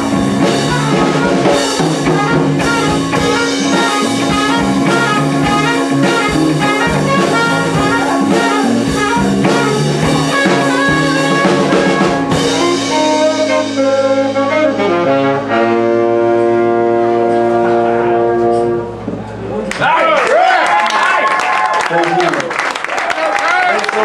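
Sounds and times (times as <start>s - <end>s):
trumpet: 0.0s - 19.1s
saxophone: 0.0s - 19.4s
electric guitar: 0.0s - 19.5s
electric bass: 0.0s - 19.8s
drums: 0.0s - 20.0s.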